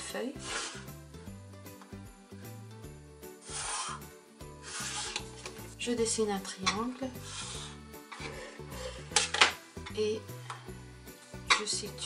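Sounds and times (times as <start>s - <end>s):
pencil stroking on paper: 0.3s - 0.9s, 3.4s - 5.8s, 7.1s - 7.8s.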